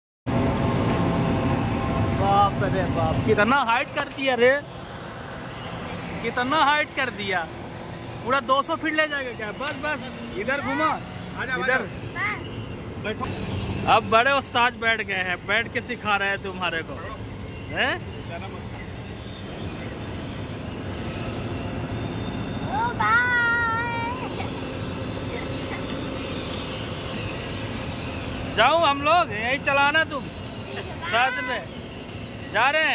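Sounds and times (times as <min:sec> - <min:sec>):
crane engine humming: 0:00.3 - 0:32.9
child calling out: 0:22.7 - 0:24.5.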